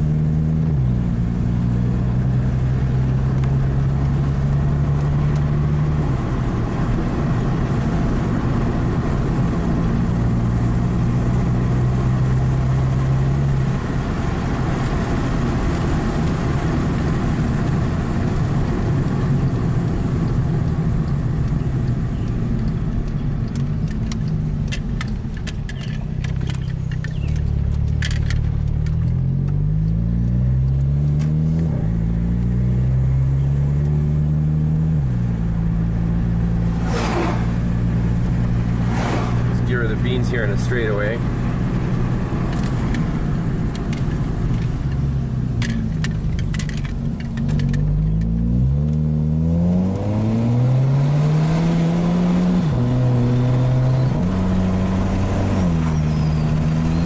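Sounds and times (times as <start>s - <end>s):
car engine accelerating: 0.0s - 57.0s
road noise inside car: 0.0s - 57.0s
brief whoosh: 36.5s - 40.0s.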